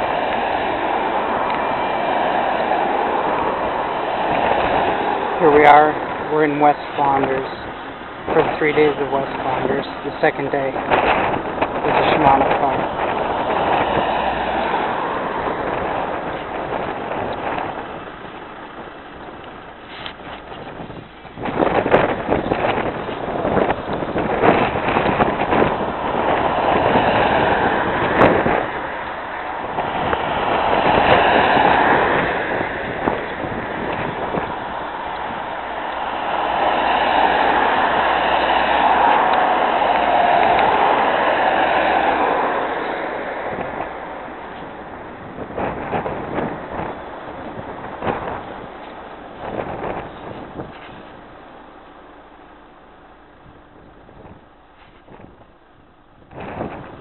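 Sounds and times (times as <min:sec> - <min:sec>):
cars driving past: 0:00.0 - 0:55.4
wind buffeting microphone: 0:00.0 - 0:57.0.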